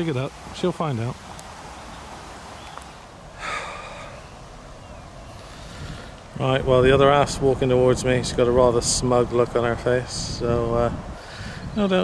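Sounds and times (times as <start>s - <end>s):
outdoor background hiss: 0.0s - 12.0s
breathy exhale: 3.3s - 4.4s, 5.3s - 6.2s, 11.2s - 11.8s.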